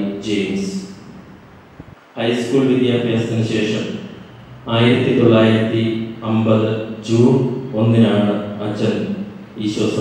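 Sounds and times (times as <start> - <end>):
man chanting in monotone: 2.2 - 10.0.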